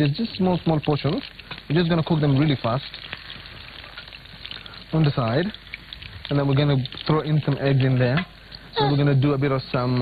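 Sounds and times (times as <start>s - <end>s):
sausage sizzling in a pan: 0.0s - 10.0s.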